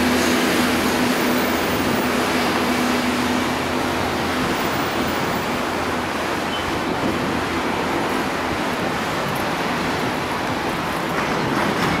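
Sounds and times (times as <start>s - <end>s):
street traffic noise: 0.0s - 12.0s.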